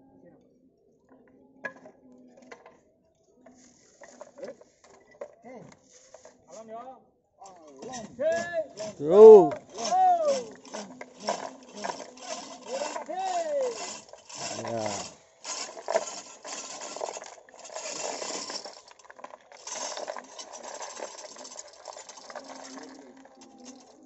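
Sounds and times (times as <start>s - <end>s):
chain hoists rattling and clinking: 7.7s - 24.0s
person shouting: 9.0s - 10.5s.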